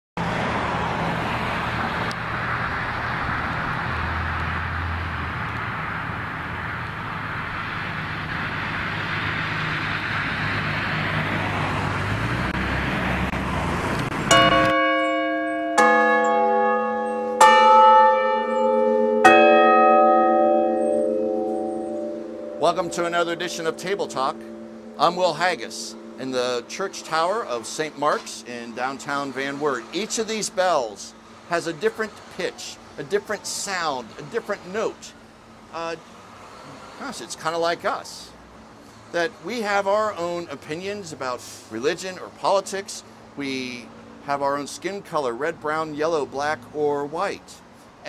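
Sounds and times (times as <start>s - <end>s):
church bells ringing: 14.3s - 32.1s
low hum: 18.4s - 28.6s.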